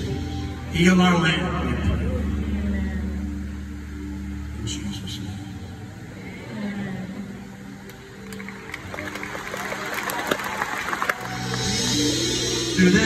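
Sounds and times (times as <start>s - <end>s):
audience clapping and cheering: 7.8s - 13.0s
band playing: 7.9s - 13.0s.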